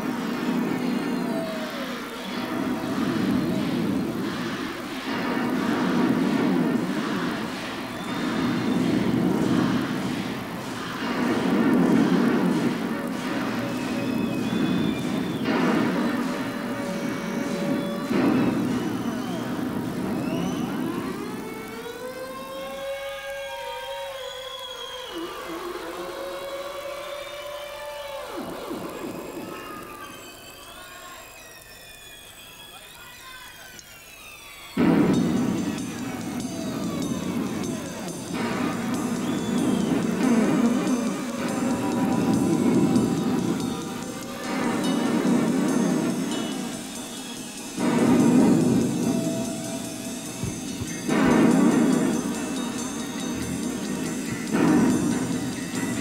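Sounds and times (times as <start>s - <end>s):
synthesizer chords: 0.0s - 22.6s, 34.8s - 56.0s.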